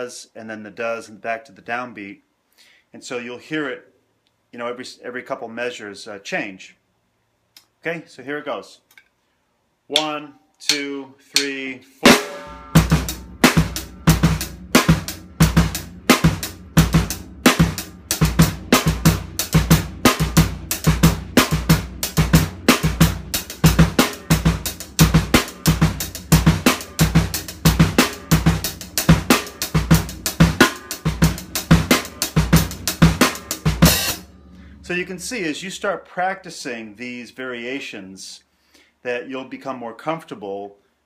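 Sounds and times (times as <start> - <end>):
snare drum hits: 12.1 - 12.9.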